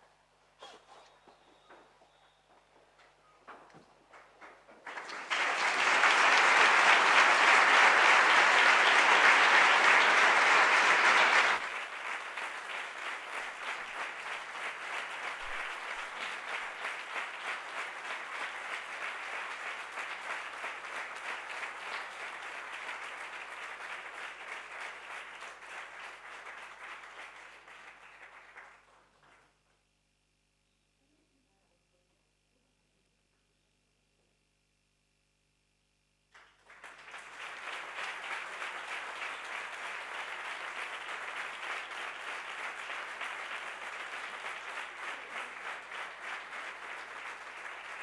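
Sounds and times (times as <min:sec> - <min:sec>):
audience applauding: 0:03.8 - 0:29.5, 0:36.4 - 0:48.0.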